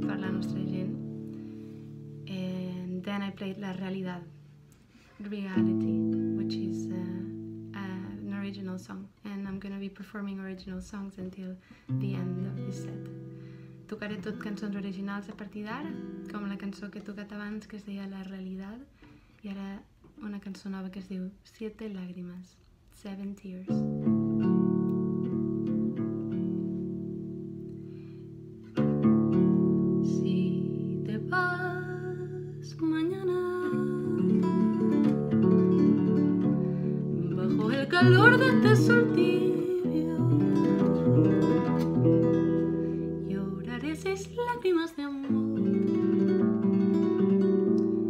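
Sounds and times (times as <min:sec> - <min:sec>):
classical guitar playing: 0:00.0 - 0:08.9, 0:11.9 - 0:17.1, 0:23.7 - 0:48.0.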